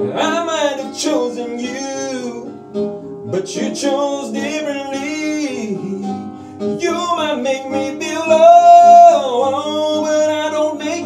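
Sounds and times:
acoustic guitar: 0.0 - 11.0.

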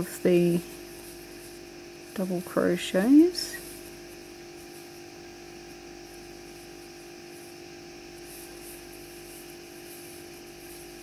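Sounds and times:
faint steady hum: 0.0 - 11.0
thin hiss: 0.0 - 11.0.

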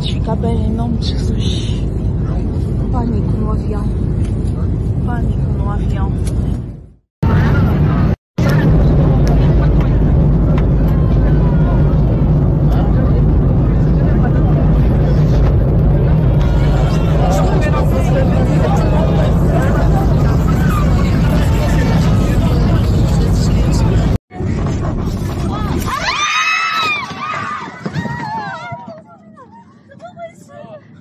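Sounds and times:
engine and airflow rumble: 0.0 - 31.0
passengers' voices: 0.0 - 31.0.

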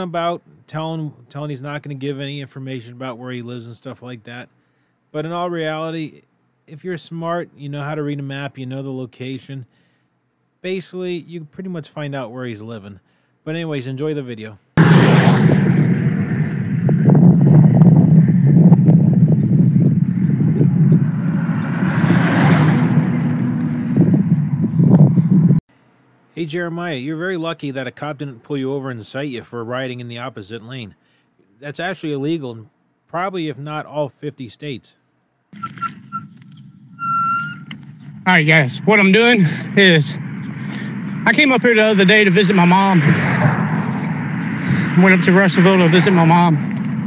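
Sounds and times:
wind buffeting microphone: 15.0 - 25.6, 42.1 - 47.0
high thin whistling tone: 35.6 - 37.8.

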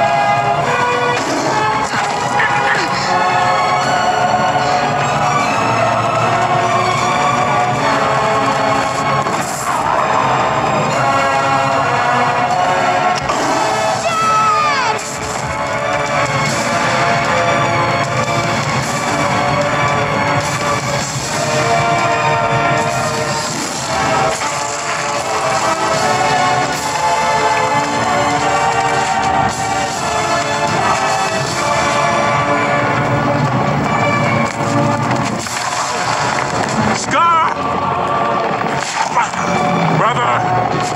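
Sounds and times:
orchestral film music: 0.0 - 40.9
stampeding herd: 0.0 - 40.9.

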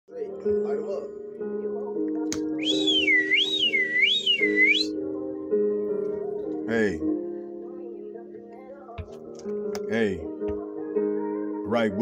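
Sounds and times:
high warbling whistle: 2.6 - 4.9.

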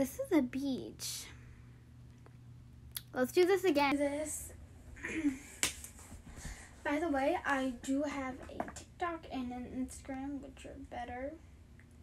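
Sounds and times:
speech: 0.0 - 1.4, 3.0 - 4.5, 6.8 - 11.4.

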